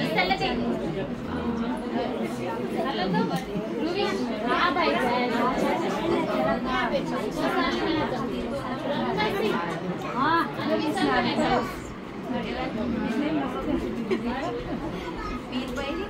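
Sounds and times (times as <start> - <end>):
overlapping chatter of women: 0.0 - 16.0.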